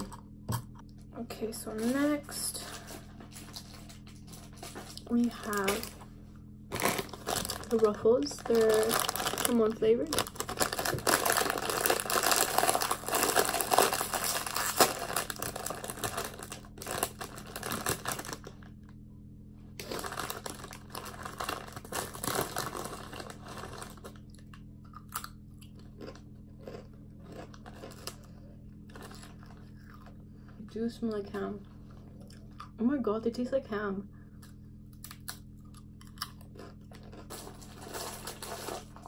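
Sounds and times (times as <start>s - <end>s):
plastic crisp bag crinkling: 1.7s - 6.0s, 6.7s - 18.8s, 19.8s - 24.5s, 26.0s - 28.2s, 28.9s - 30.1s, 36.2s - 39.0s
chips crunching: 6.7s - 18.8s, 19.8s - 30.2s, 34.4s - 39.0s.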